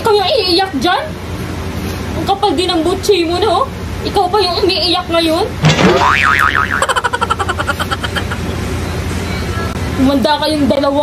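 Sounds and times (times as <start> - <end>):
cartoon boing spring twang: 5.7 - 7.0.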